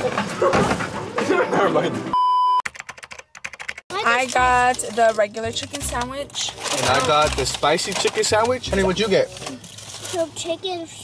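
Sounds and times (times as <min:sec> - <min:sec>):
electronic beep: 0:02.1 - 0:02.6.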